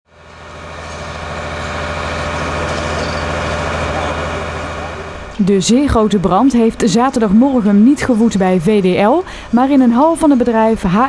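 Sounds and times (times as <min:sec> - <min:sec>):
engine droning: 0:00.1 - 0:11.0.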